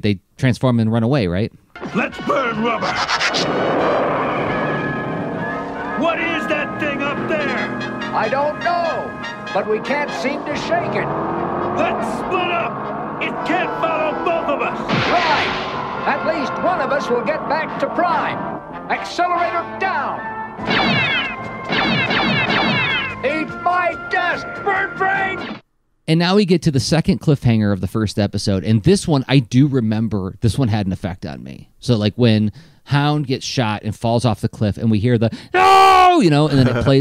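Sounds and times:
cartoon background music: 1.8 - 3.5, 5.4 - 11.1, 17.8 - 25.6
cartoon cars speeding off: 1.8 - 23.3
cartoon laser zaps: 20.6 - 23.1.

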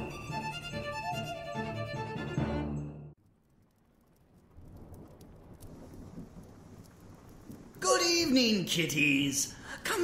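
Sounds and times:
steady rain: 3.2 - 10.0
low rumble of thunder: 3.3 - 8.7
man speaking: 7.8 - 10.0.

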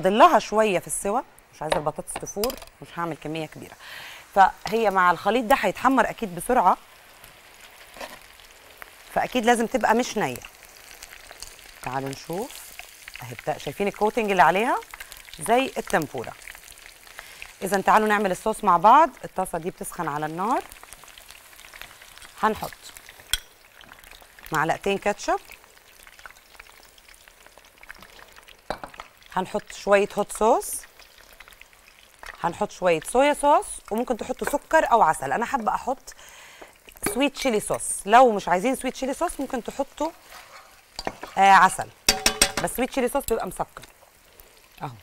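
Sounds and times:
fries sizzling in hot oil: 0.0 - 45.0.

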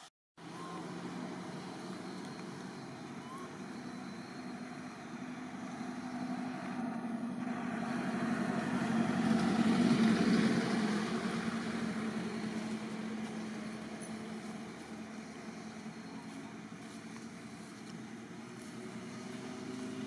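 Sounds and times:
vehicle engine passing: 0.4 - 20.0.

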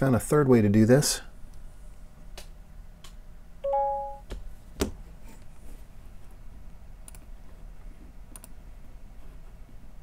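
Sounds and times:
two-note electronic beep: 3.6 - 4.2
computer mouse clicks: 7.0 - 7.3, 8.3 - 8.6.

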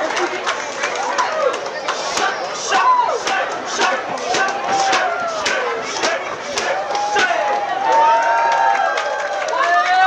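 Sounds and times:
crowd voices and shouts: 0.0 - 10.0
sharp slaps and knocks: 2.1 - 7.4.

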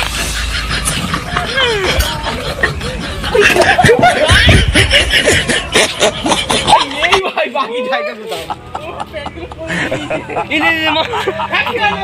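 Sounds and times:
young men laughing: 0.0 - 12.0.

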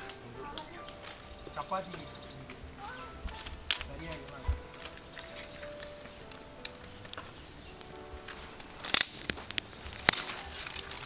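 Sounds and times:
dry twigs clicking and snapping: 0.0 - 11.0
twig snapping sharply: 0.0 - 11.0.

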